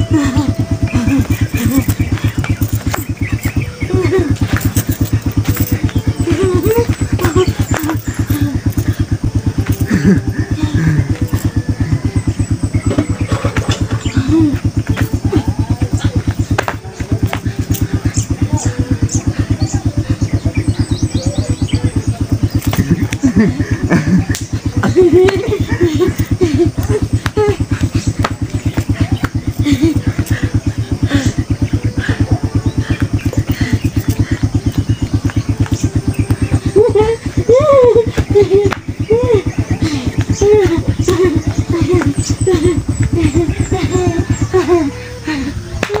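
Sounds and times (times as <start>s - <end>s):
small engine idling: 0.0s - 46.0s.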